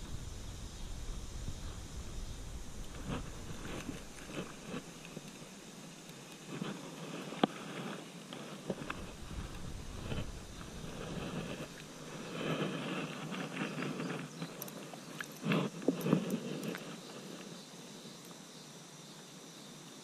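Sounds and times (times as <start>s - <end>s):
rustling: 0.0s - 17.6s
fish splashing: 2.5s - 5.5s.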